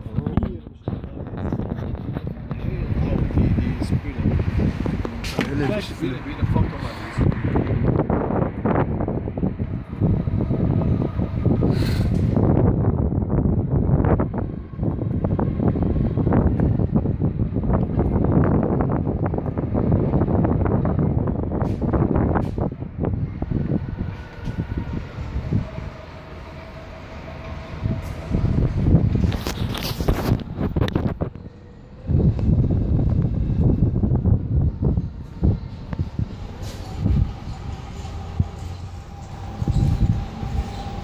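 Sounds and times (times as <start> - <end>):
wind buffeting microphone: 0.0 - 41.0.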